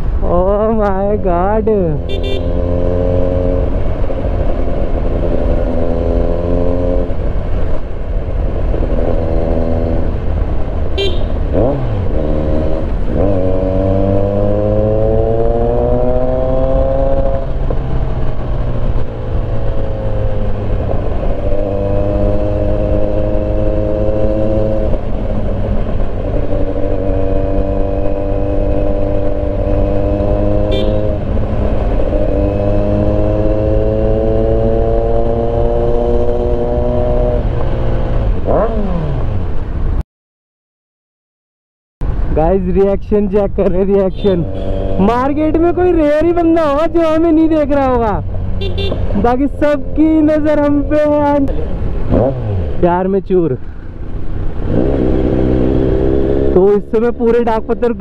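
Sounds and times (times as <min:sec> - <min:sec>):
wind rumble: 0:00.0 - 0:40.0
motorcycle engine revving: 0:01.7 - 0:39.6, 0:44.2 - 0:58.0.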